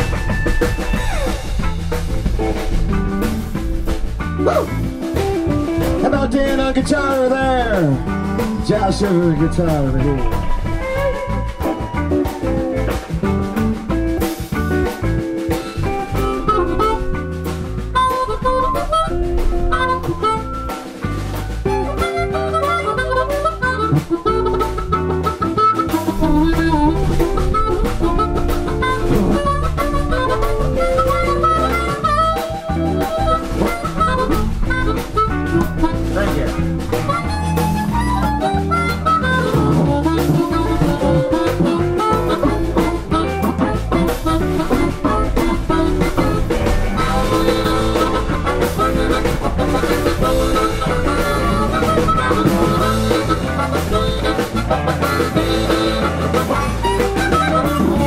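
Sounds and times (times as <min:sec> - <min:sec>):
electric guitar solo: 0:00.0 - 0:58.0
live blues band playing: 0:00.0 - 0:58.0
person calling out: 0:04.4 - 0:04.7.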